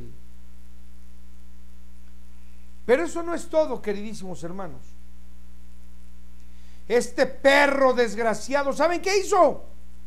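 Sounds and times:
low electrical hum: 0:00.0 - 0:10.0
man speaking: 0:02.9 - 0:05.0, 0:06.9 - 0:09.7.

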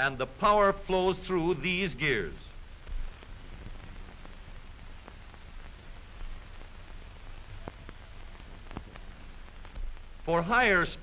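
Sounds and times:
film soundtrack hiss and crackle: 0:00.0 - 0:11.0
faint clicks: 0:02.8 - 0:10.2.

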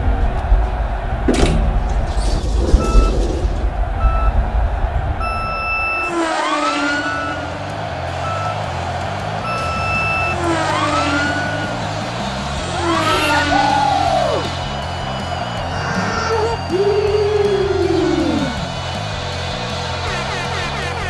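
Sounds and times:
steady low rumble: 0:00.0 - 0:06.1
countdown beeps: 0:05.2 - 0:06.1, 0:08.3 - 0:08.6, 0:09.5 - 0:10.5.

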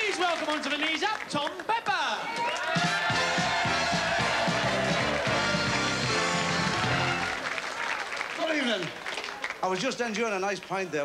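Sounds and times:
audience applause: 0:00.0 - 0:01.8, 0:02.4 - 0:09.8
band music: 0:02.7 - 0:07.4.

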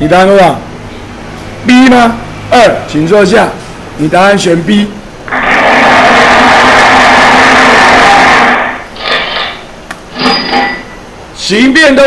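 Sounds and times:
loud scraping rub: 0:09.0 - 0:10.7.

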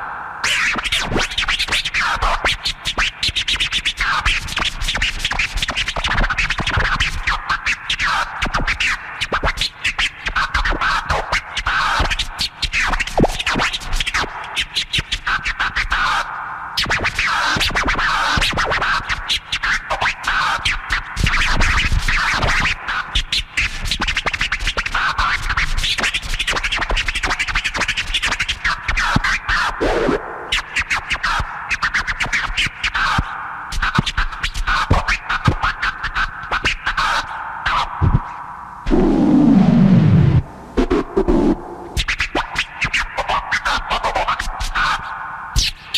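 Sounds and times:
turntable scratching: 0:00.0 - 0:45.9
hip hop beat: 0:40.1 - 0:42.0.

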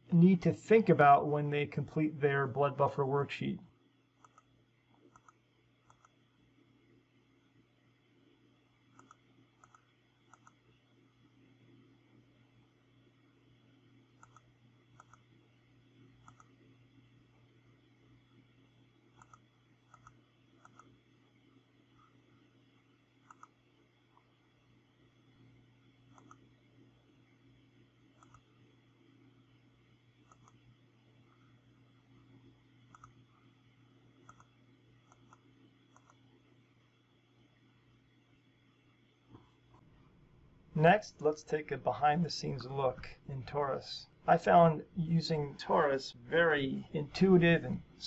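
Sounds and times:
low steady hum: 0:00.0 - 0:48.0
computer mouse clicks: 0:04.2 - 0:06.2, 0:08.9 - 0:10.6, 0:14.2 - 0:15.3, 0:16.2 - 0:16.6, 0:19.1 - 0:21.0, 0:23.2 - 0:23.6, 0:26.1 - 0:26.5, 0:28.2 - 0:28.5, 0:30.2 - 0:30.6, 0:32.9 - 0:33.3, 0:34.2 - 0:36.3.

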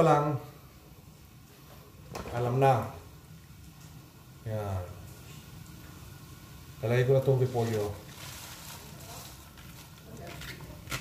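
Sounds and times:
rustle of cabbage leaves: 0:07.3 - 0:11.0.

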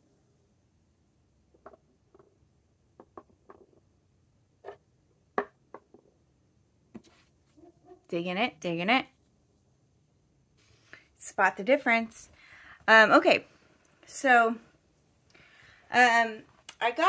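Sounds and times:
plastic vials tapping on table: 0:03.0 - 0:03.8, 0:05.4 - 0:06.1.

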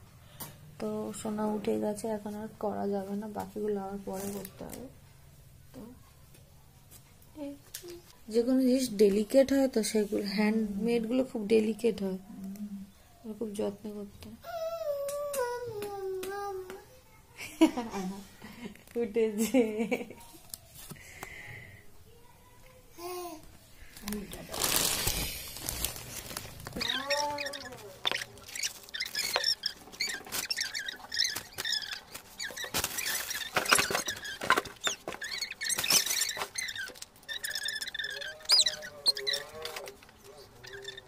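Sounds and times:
rustles and knocks: 0:25.6 - 0:38.0
high-pitched chirps and squeaks: 0:25.6 - 0:41.0.

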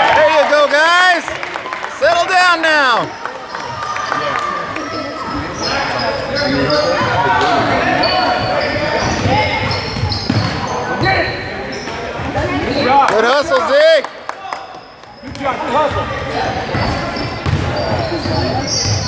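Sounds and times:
people shouting and talking: 0:00.0 - 0:19.0.

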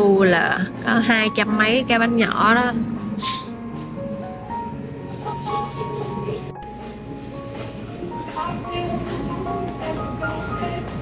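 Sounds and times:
music with held melodic notes: 0:00.7 - 0:11.0.

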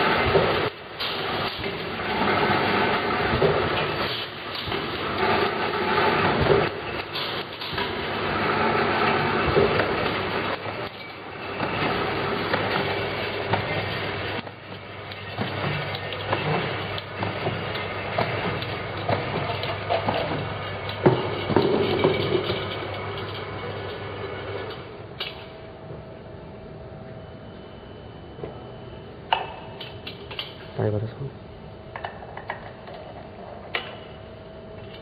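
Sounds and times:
conveyor machinery running: 0:00.0 - 0:35.0.

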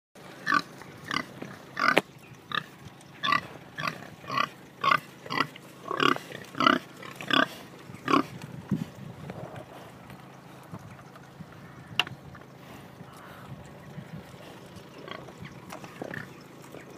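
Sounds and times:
pig grunting: 0:00.3 - 0:10.7, 0:12.6 - 0:16.9.

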